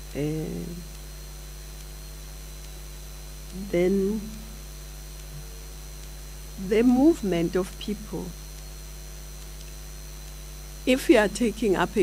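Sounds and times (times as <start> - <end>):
electrical mains hum: 0.0 - 12.0
faint high whine: 0.0 - 12.0
person's voice: 0.1 - 0.8, 3.6 - 4.4, 6.6 - 8.3, 10.9 - 12.0.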